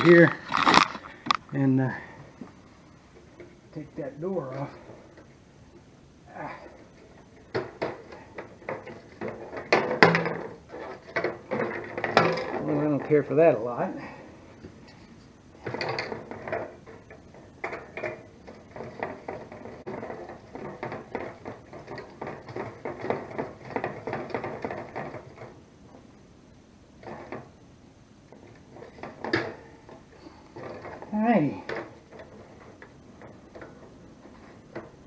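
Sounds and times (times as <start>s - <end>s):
metal and plastic clicks and scrapes: 0.0s - 1.4s, 6.6s - 13.2s.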